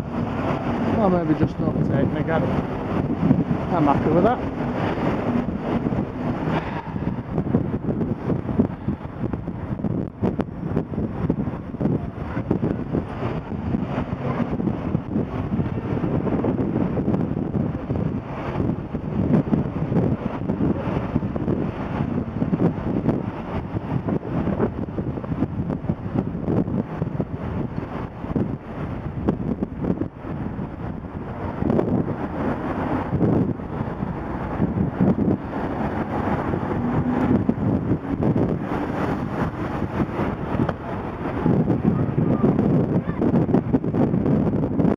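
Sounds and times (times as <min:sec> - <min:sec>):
car engines: 0:00.0 - 0:44.9
wind buffeting microphone: 0:00.0 - 0:44.9.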